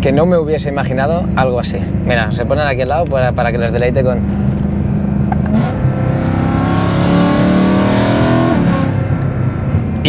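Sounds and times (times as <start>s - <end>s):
car engine accelerating: 1.2s - 10.0s.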